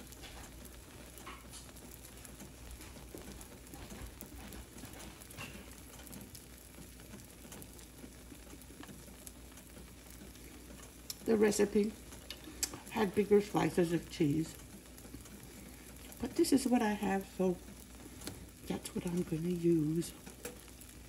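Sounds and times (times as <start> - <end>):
small ticks and pops: 0.0 - 12.9, 14.5 - 16.3, 17.6 - 19.4, 20.1 - 21.0
egg sizzling in frying pan: 0.0 - 21.0.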